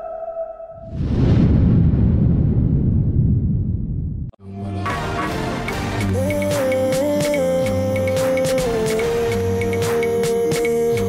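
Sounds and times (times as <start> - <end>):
deep rumbling hit: 0.8 - 4.4.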